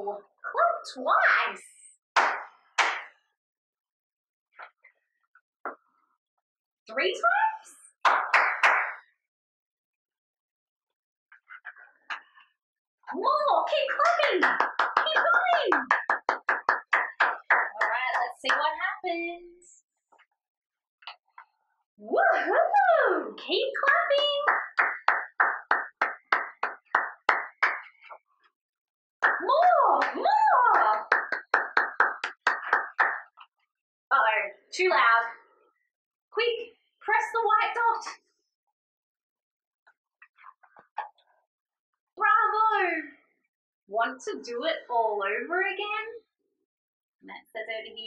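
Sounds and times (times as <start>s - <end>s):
hand claps: 2.2s - 3.2s, 8.0s - 9.0s, 13.7s - 18.8s, 23.8s - 28.2s, 29.2s - 33.4s.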